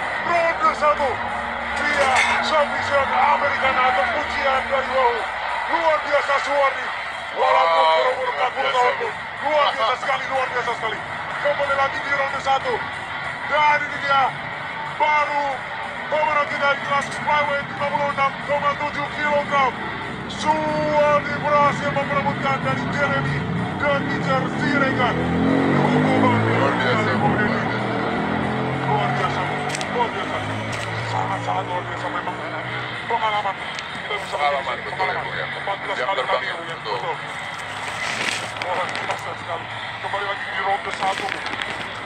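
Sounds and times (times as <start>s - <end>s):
arena crowd noise: 0.0s - 42.0s
man talking: 28.7s - 37.3s, 38.5s - 41.5s.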